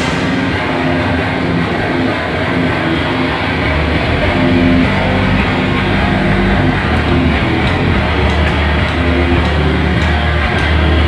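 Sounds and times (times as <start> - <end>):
drum kit with cymbals: 0.0 - 2.1
bass guitar: 0.0 - 11.0
distorted electric guitars: 0.0 - 11.0.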